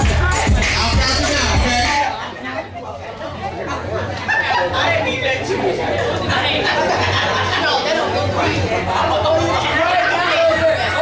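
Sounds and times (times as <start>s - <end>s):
hip hop music with heavy bass: 0.0s - 2.2s
crowd of people chatting: 0.0s - 11.0s.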